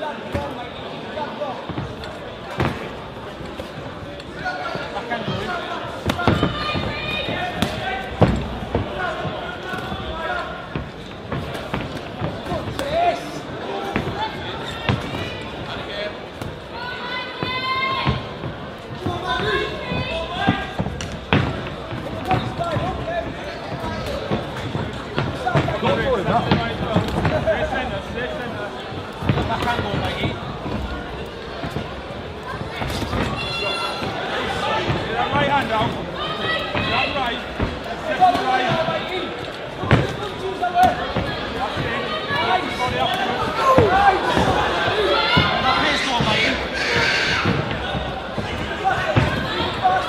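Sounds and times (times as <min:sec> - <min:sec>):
people shouting: 0:04.4 - 0:10.6, 0:16.7 - 0:18.3, 0:32.5 - 0:37.4, 0:39.8 - 0:50.0.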